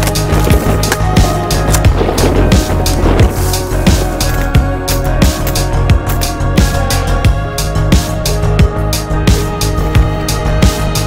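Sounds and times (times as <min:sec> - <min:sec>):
background music with fast beat: 0:00.0 - 0:11.0.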